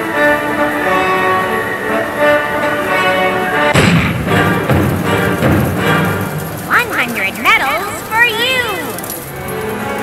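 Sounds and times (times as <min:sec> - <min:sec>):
heavy boom sound effect: 0:03.7 - 0:05.9.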